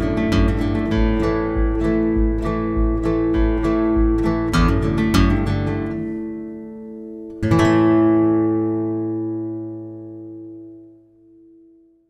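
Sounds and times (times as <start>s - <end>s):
guitar chord ringing out: 0.0s - 12.0s.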